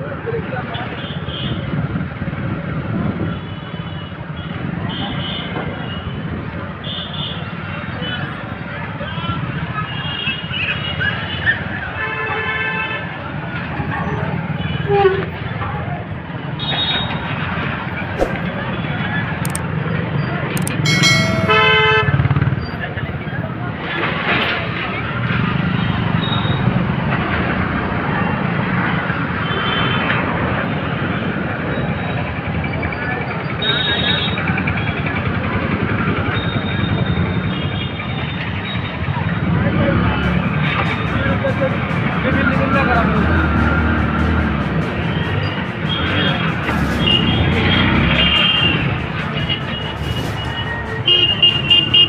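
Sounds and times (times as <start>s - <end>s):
motorcycle and rickshaw engines: 0.0s - 52.0s
crowd voices: 20.6s - 22.1s
vehicle horn honking: 20.8s - 22.2s.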